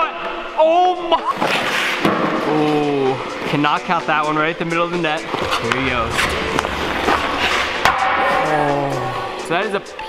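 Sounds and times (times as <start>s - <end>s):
background music: 0.0s - 10.0s
hockey stick hitting puck: 1.6s - 2.5s, 5.4s - 8.6s.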